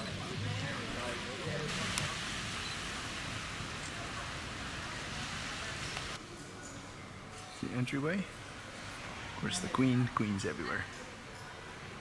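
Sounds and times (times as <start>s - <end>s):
murmur of distant voices: 0.0s - 12.0s
outdoor wind hiss: 0.2s - 12.0s.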